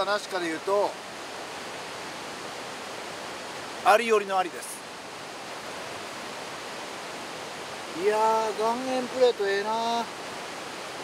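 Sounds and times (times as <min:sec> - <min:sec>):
river flowing: 0:00.0 - 0:11.0.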